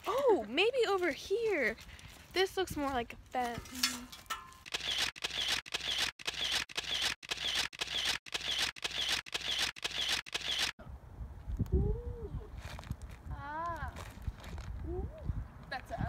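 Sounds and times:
camera shutter firing: 4.7 - 10.8.

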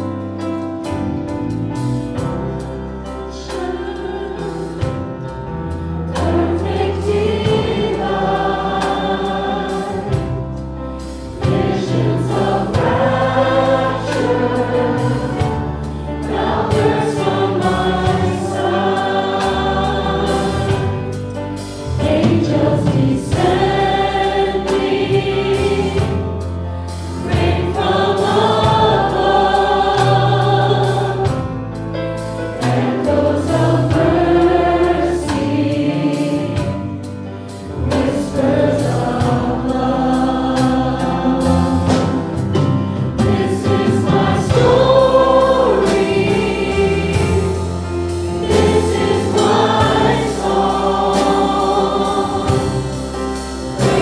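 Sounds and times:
congregation singing: 0.0 - 54.0
live band playing: 0.0 - 54.0.

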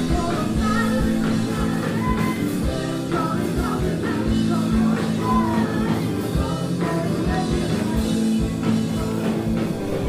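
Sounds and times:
ska-punk band playing: 0.0 - 10.0.

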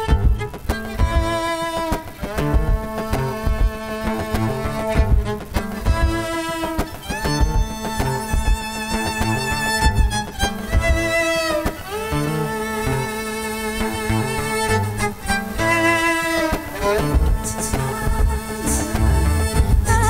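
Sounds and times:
low percussive beat: 0.0 - 12.6, 14.6 - 20.0
violin long bowed notes: 0.0 - 20.0.

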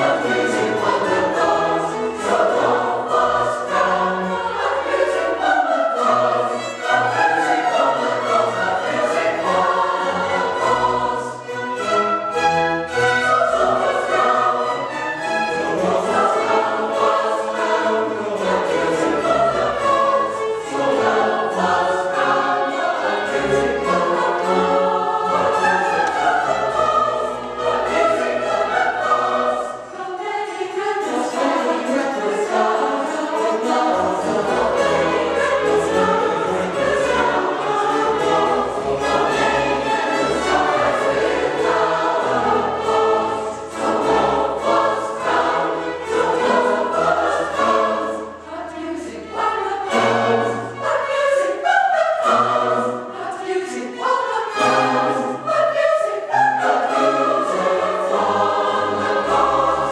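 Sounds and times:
mixed choir singing: 0.0 - 59.9
string orchestra: 0.0 - 59.9.

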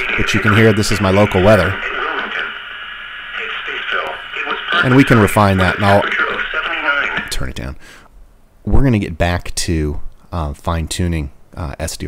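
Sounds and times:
faint radio voice: 0.0 - 7.4
radio hiss: 0.0 - 8.1.

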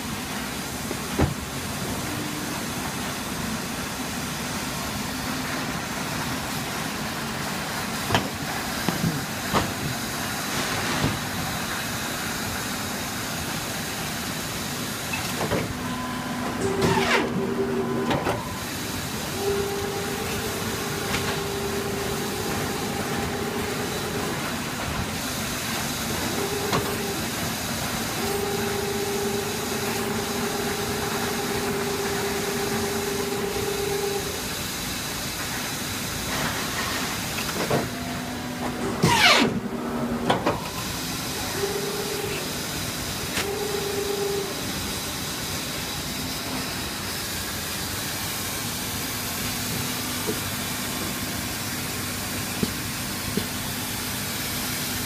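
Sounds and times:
paper cutter machine hum: 15.4 - 34.6, 37.6 - 48.0.

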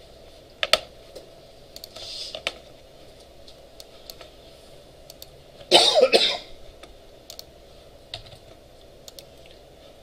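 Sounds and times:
keyboard and mouse clicks: 1.7 - 2.6, 5.1 - 5.4, 6.8 - 7.5, 8.1 - 9.6
person coughing: 5.7 - 6.5.

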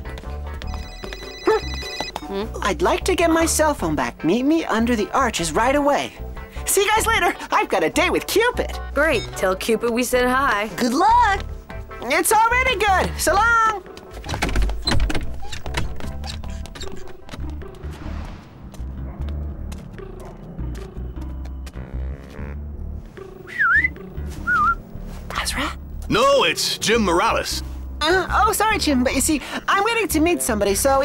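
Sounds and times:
background music: 0.0 - 31.0
mobile phone ringtone: 0.6 - 2.3
swinging doors and clicks: 13.8 - 17.9.

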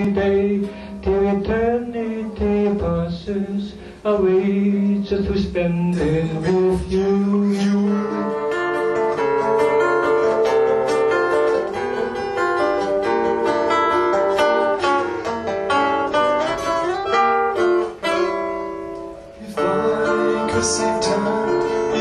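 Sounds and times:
fingerpicked acoustic guitar: 0.0 - 22.0.

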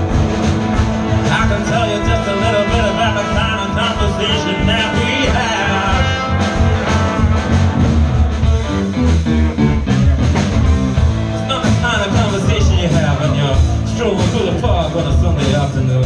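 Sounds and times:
drum kit steady beat: 0.0 - 16.0
electric bass: 0.0 - 16.0
electric guitar: 0.0 - 16.0.

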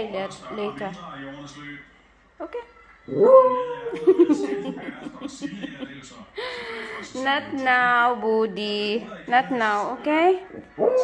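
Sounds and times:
dog whining howl: 3.1 - 4.0, 10.8 - 11.0.

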